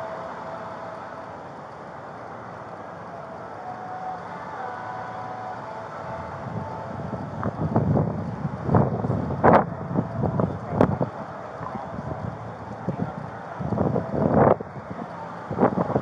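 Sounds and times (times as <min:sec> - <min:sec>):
street noise: 0:00.0 - 0:16.0
wind on microphone: 0:05.5 - 0:16.0.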